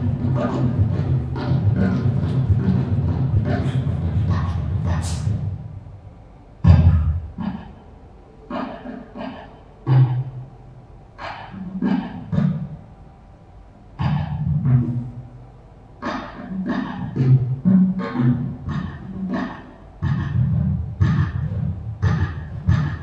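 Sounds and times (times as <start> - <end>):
man making deep vocal sounds: 0.0 - 5.8.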